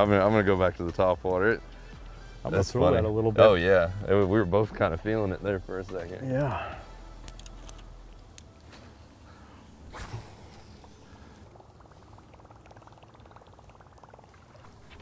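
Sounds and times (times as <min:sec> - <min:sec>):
fishing reel ticking: 0:06.9 - 0:15.0
fishing line hissing off spool: 0:08.6 - 0:12.6.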